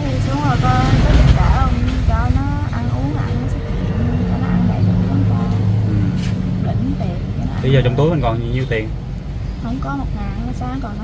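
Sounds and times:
low speech: 0.0s - 9.0s
vehicle engine running: 0.0s - 11.0s.

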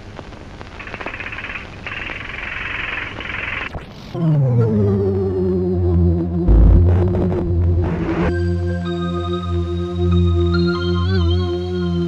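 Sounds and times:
steady hiss with crackles: 0.0s - 4.2s
low rumble: 4.1s - 8.8s
glitchy sweep: 5.9s - 8.6s.

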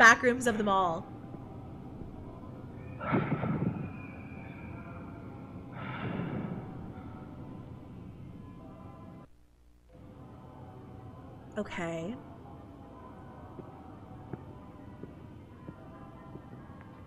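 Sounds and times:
eerie ambient music drone: 2.8s - 9.1s
breathy swells: 2.9s - 7.8s.

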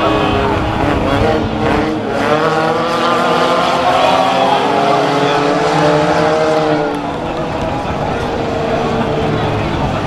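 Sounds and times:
race car engines: 0.0s - 10.0s.

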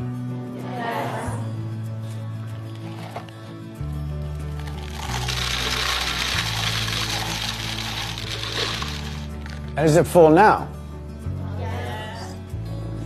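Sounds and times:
background music with low notes: 0.0s - 13.0s
pebbles pouring into glass jar: 4.4s - 10.0s.

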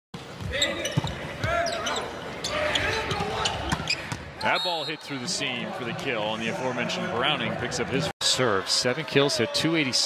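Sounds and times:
sneakers squeaking on hardwood: 0.2s - 4.2s.

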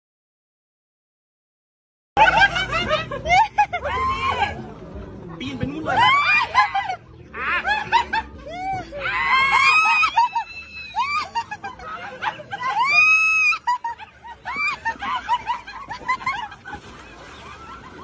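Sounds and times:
people laughing and shrieking: 2.2s - 5.0s, 5.7s - 18.0s.

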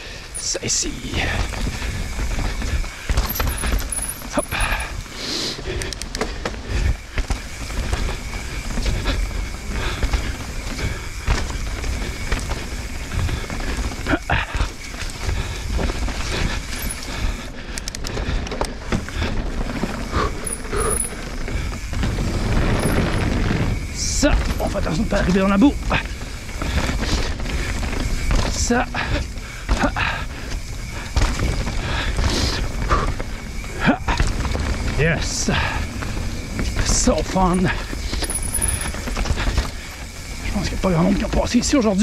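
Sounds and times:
tyres rolling over dirt: 0.0s - 42.0s
bike rattling knocks: 1.1s - 5.1s, 6.0s - 41.8s.

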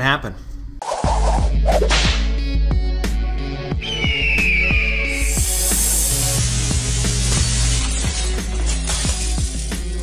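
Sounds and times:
whip-crack sound effects: 0.9s - 2.3s
high whistling tone sliding down: 3.8s - 6.3s.

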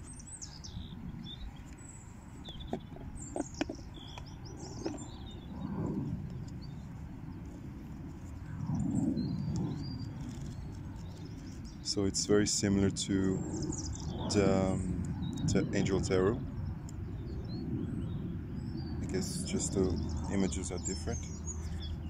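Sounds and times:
low background rumble: 0.0s - 22.0s
small birds chirping: 0.0s - 22.0s.

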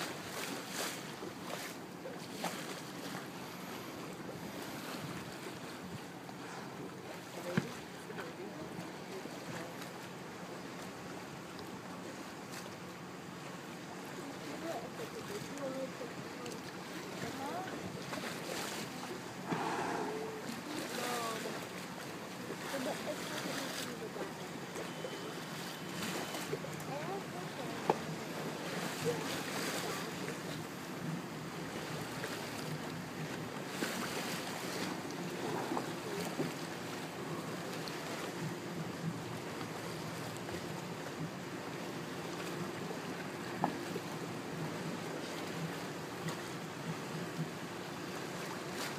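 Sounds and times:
boat engine hum: 0.0s - 48.9s
faint indistinct voices: 14.0s - 30.9s
water washing: 14.3s - 45.4s.

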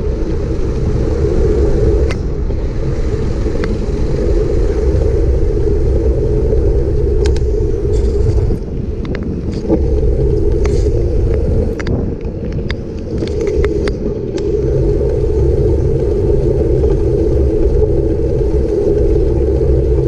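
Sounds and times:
bicycle tyres rolling on asphalt: 0.0s - 20.0s
wind rumbling on microphone: 0.0s - 20.0s.

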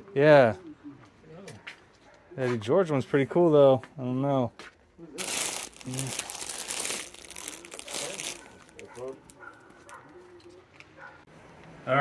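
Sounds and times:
plastic wrapping crinkling: 5.2s - 10.2s.

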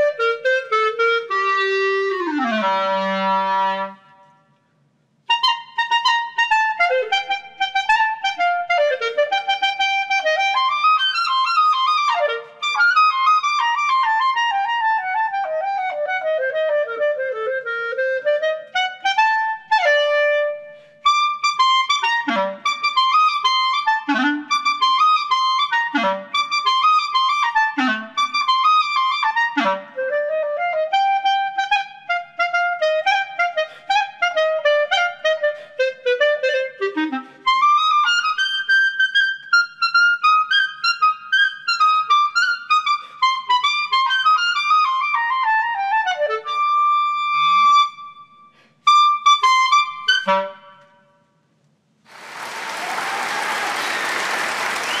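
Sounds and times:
applause: 52.1s - 55.0s
clarinet playing fast runs: 52.1s - 55.0s.

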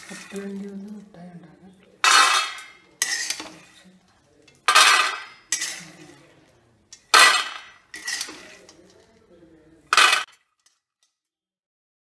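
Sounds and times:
peanuts rattling on metal plate: 0.0s - 1.1s, 2.0s - 6.3s, 6.9s - 9.2s, 9.9s - 10.7s.

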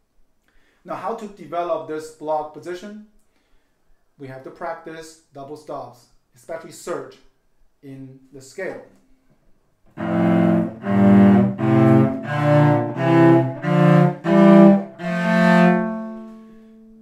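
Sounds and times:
cello playing bowed scale: 9.9s - 17.0s.

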